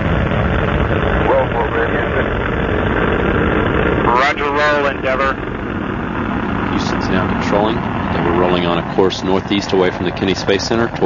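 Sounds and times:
rocket engines roaring: 0.0s - 11.0s
faint voices: 1.1s - 2.8s, 3.9s - 5.5s, 6.2s - 11.0s.

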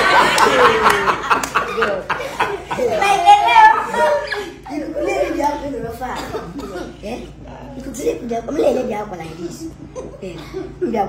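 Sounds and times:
group of people laughing: 0.0s - 5.3s.

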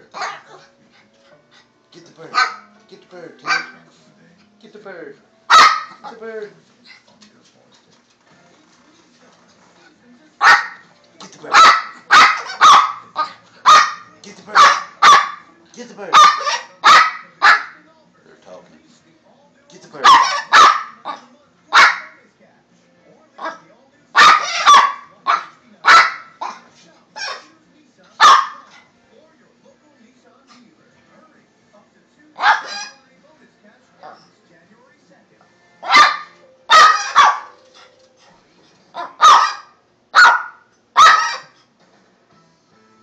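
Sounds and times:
dog barking loudly: 0.0s - 0.7s, 2.3s - 2.7s, 3.4s - 3.8s, 5.5s - 6.2s, 10.4s - 10.8s, 11.5s - 15.4s, 16.1s - 17.8s, 20.0s - 22.2s, 24.2s - 27.5s, 28.2s - 28.8s, 32.4s - 33.0s, 35.8s - 37.6s, 39.0s - 41.6s.

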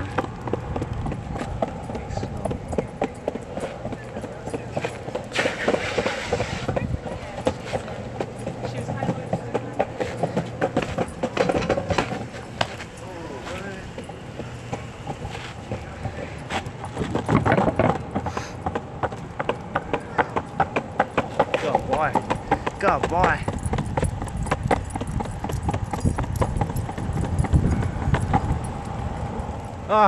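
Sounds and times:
longboard wheels rolling rumble: 0.0s - 30.0s
wheels clacking over sidewalk joints: 0.0s - 30.0s.

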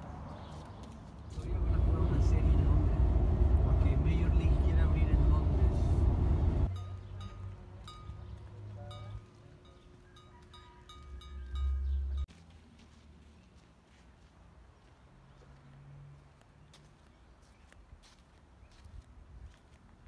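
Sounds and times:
road rumble: 0.0s - 13.2s
heavy wind buffeting: 1.4s - 6.7s
low wind rumble: 1.4s - 6.7s.

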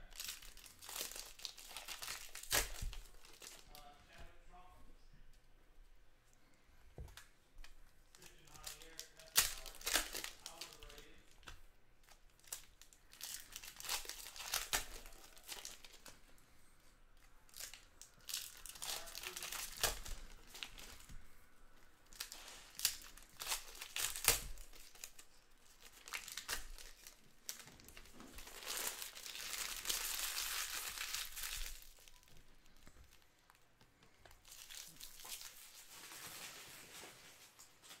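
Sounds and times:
foil wrappers crinkling: 0.0s - 4.2s, 8.1s - 16.6s, 17.5s - 21.2s, 22.0s - 38.0s.

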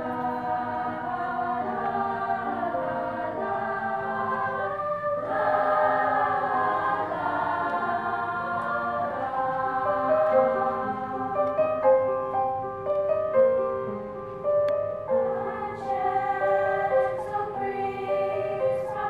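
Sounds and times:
youth choir singing: 0.0s - 12.1s, 15.1s - 19.0s.

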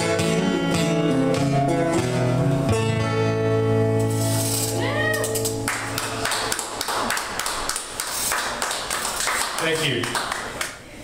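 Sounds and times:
small audience clapping: 5.5s - 10.9s.

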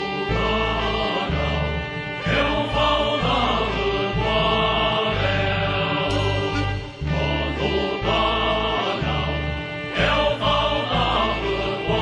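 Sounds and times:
choir singing over a band: 0.0s - 12.0s
stepping bass line: 0.1s - 12.0s.

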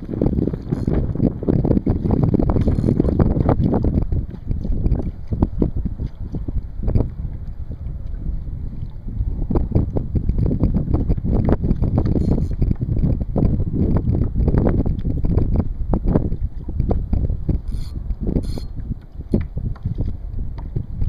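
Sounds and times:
waves lapping against kayak hull: 0.0s - 21.0s
wind buffeting microphone: 0.0s - 21.0s.

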